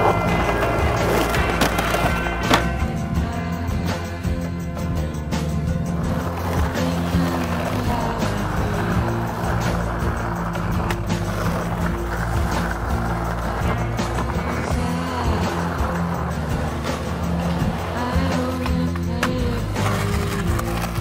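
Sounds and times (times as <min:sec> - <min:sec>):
background music: 0:00.0 - 0:21.0
skateboard wheels rolling on asphalt: 0:00.0 - 0:21.0
skateboard knocks: 0:00.1 - 0:02.8.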